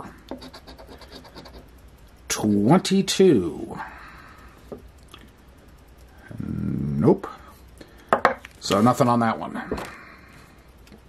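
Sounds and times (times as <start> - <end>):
coin scratching lottery ticket: 0.3 - 1.7.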